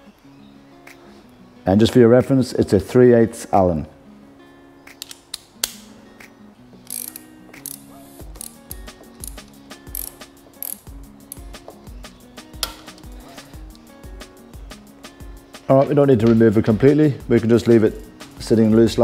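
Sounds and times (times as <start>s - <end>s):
background music with steady beat: 0.0s - 19.0s
ratchet clicking: 6.8s - 11.6s.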